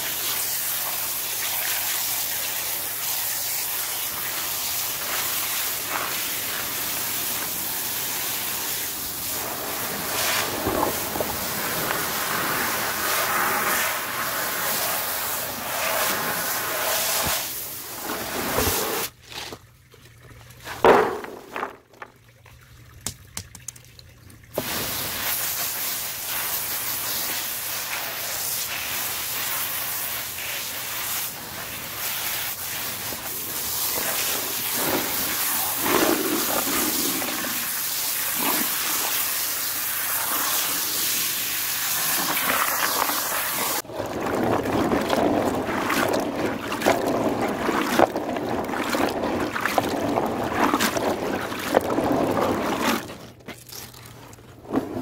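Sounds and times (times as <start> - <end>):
garden hose spraying water: 0.0 - 19.2, 24.5 - 43.9
water pouring and splashing: 0.0 - 55.0.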